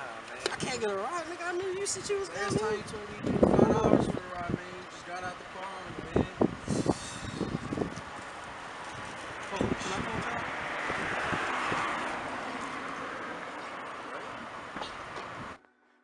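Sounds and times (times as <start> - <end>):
indistinct voices talking: 0.0 - 15.1
even rushing noise: 5.9 - 14.7.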